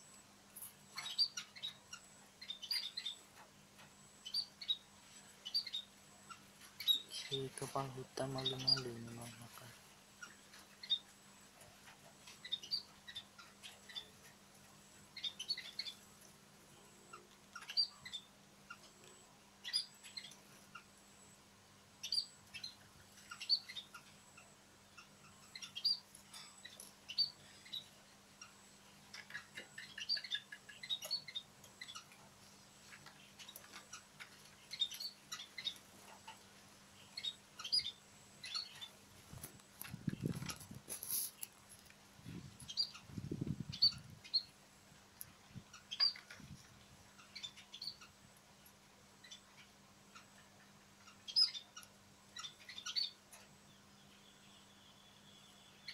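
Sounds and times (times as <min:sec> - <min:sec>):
small birds chirping: 0:00.0 - 0:55.9.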